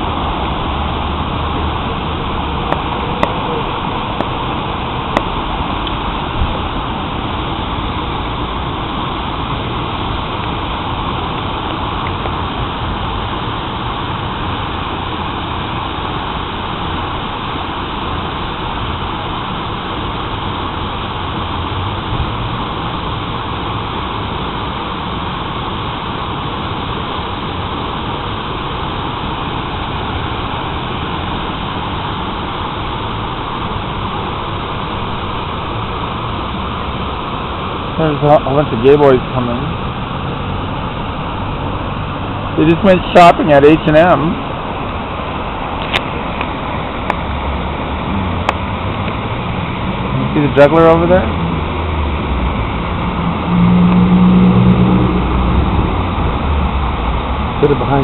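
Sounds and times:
fountain water cascading: 0:00.0 - 0:58.0.

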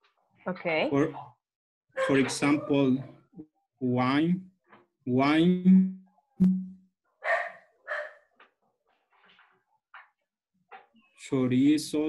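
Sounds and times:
dog barking: 0:01.0 - 0:01.4, 0:02.0 - 0:03.1, 0:07.2 - 0:08.3.

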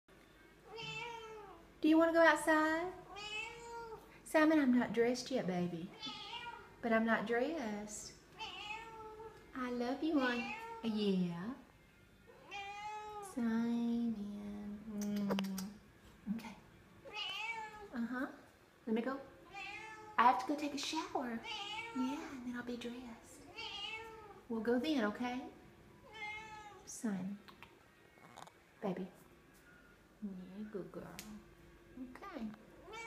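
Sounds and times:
cat meowing: 0:00.7 - 0:01.6, 0:06.0 - 0:06.7, 0:08.4 - 0:09.4, 0:12.3 - 0:13.2, 0:17.1 - 0:17.9, 0:19.5 - 0:20.2, 0:21.4 - 0:22.2, 0:23.5 - 0:24.4, 0:26.0 - 0:26.8.

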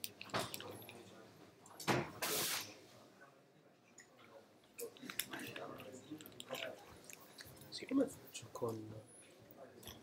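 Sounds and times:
quiet indistinct speech: 0:00.0 - 0:10.0.

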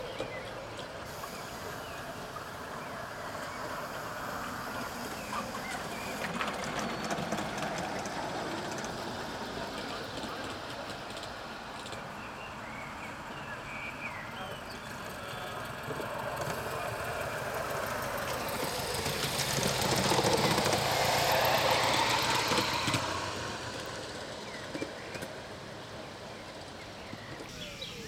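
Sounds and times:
model steam locomotive passing: 0:00.0 - 0:28.0.

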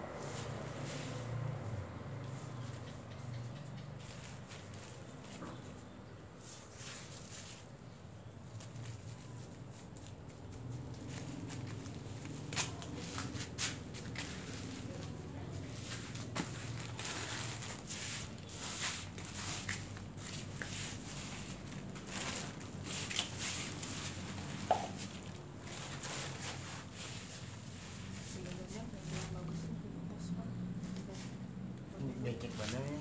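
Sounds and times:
hands scooping soil: 0:04.0 - 0:29.4.

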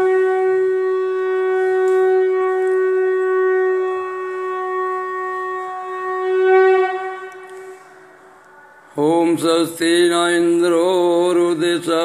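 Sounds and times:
conch shell blown: 0:00.0 - 0:09.0.

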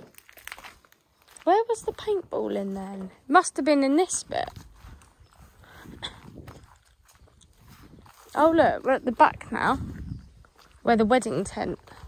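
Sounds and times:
footsteps through long grass: 0:00.0 - 0:12.0.

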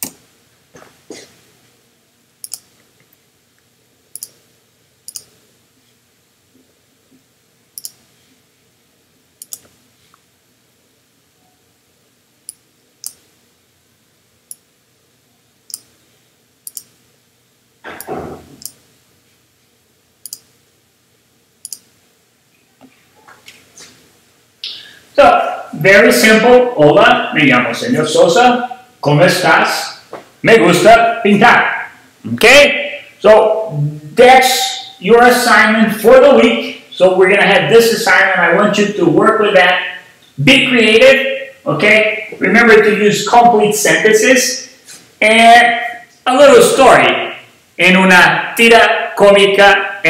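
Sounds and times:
computer mouse clicking: 0:02.4 - 0:02.7, 0:04.1 - 0:04.4, 0:05.1 - 0:05.3, 0:07.8 - 0:08.0, 0:09.4 - 0:09.8, 0:12.5 - 0:13.2, 0:15.7 - 0:15.9, 0:16.6 - 0:16.9, 0:18.6 - 0:18.8, 0:20.2 - 0:20.5, 0:21.6 - 0:21.9.

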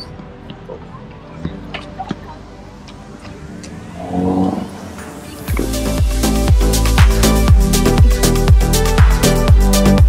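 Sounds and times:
vehicle engine passing: 0:03.0 - 0:05.5.

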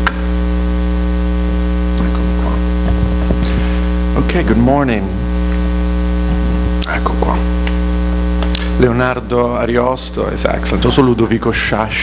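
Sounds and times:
electrical mains hum: 0:00.0 - 0:12.0
microphone handling clicks: 0:02.0 - 0:04.0, 0:07.6 - 0:08.8.

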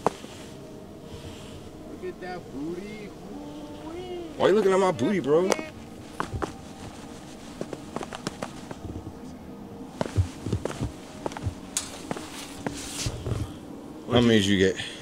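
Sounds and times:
dry leaves crackling underfoot: 0:05.9 - 0:08.9
boots on concrete steps: 0:06.1 - 0:07.0, 0:10.0 - 0:13.5.

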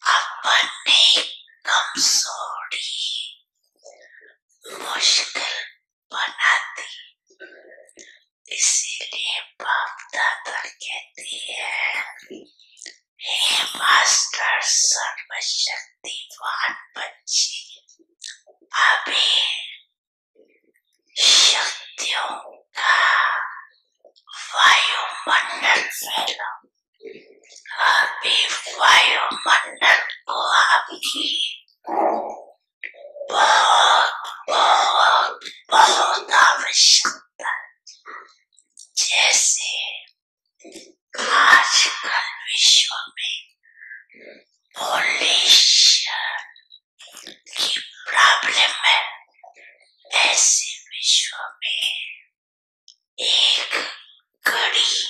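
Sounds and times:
person talking: 0:24.3 - 0:26.5, 0:27.1 - 0:37.6
woman talking into microphone: 0:24.3 - 0:26.6, 0:27.5 - 0:32.3, 0:53.2 - 0:55.0.

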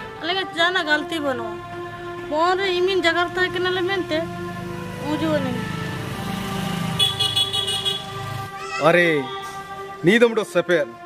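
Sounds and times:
engine running: 0:00.0 - 0:08.6
background music: 0:00.0 - 0:11.0.

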